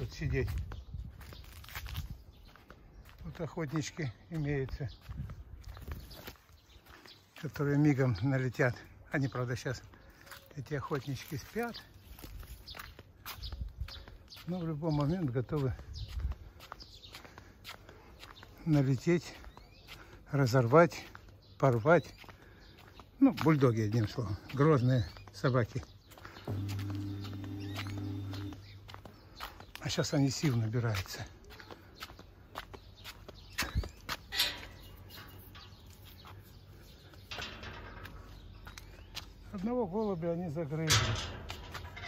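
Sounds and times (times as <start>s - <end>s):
footsteps on paved path: 0.0s - 42.0s.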